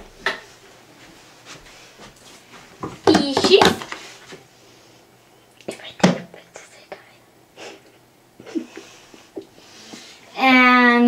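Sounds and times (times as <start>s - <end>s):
whispering close to microphone: 5.6s - 7.2s.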